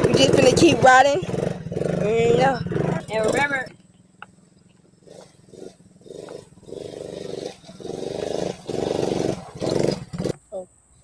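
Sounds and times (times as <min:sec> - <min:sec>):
small atv engine revving: 0:00.0 - 0:10.5.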